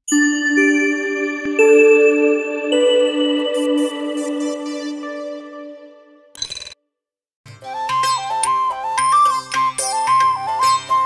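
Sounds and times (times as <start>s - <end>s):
bright chime sting: 0.1s - 6.2s
held music chord: 0.1s - 6.3s.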